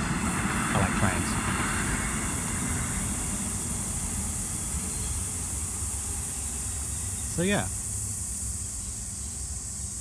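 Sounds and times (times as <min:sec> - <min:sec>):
insects chorus: 0:00.0 - 0:10.0.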